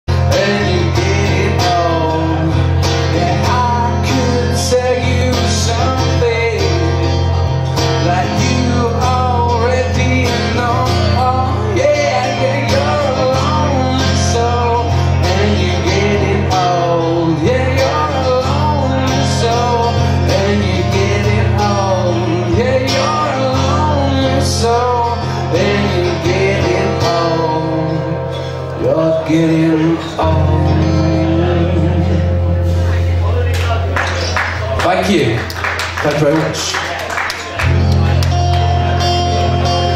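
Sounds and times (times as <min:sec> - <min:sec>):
man singing: 0:00.1 - 0:33.1
guitar: 0:00.1 - 0:39.9.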